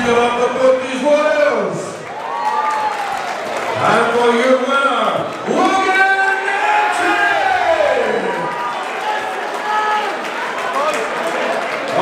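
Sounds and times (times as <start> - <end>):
announcer speaking into microphone: 0.0 - 2.0, 3.8 - 8.5
crowd noise: 0.0 - 12.0.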